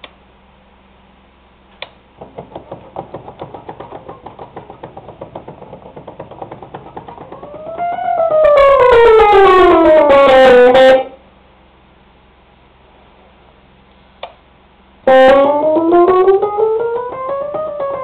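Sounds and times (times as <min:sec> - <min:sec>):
electric piano quick repeated notes: 0:06.6 - 0:11.1, 0:15.1 - 0:18.0
tone sliding down in pitch: 0:07.3 - 0:11.1, 0:15.1 - 0:17.7.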